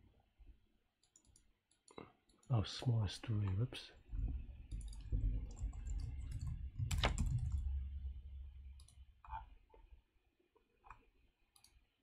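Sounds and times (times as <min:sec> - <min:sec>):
keyboard keystroke clicks: 0:06.3 - 0:07.6.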